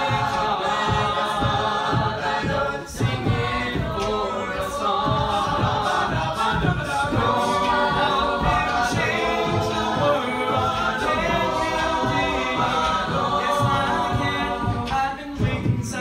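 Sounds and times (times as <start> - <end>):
a cappella group singing: 0.0 - 16.0
steady low beat: 0.0 - 16.0.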